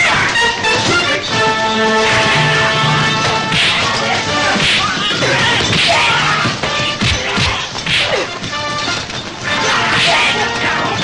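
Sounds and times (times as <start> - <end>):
music score: 0.2 - 4.6
punch impacts: 3.3 - 8.2.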